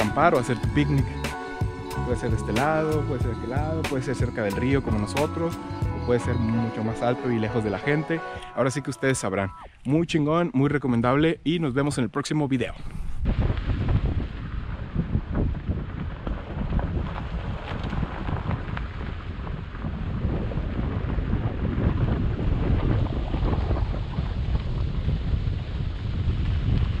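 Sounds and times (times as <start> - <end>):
wind buffeting microphone: 12.8 - 27.0.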